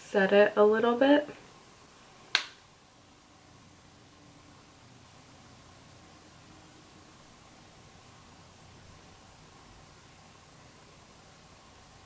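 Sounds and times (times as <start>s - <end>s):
sharp click: 2.3s - 2.6s.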